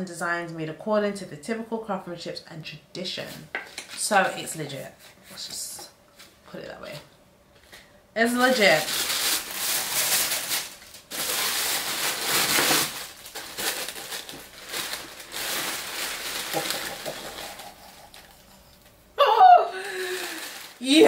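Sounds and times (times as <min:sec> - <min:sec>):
tissue paper rustling and crinkling: 0:08.3 - 0:18.6, 0:19.8 - 0:21.0.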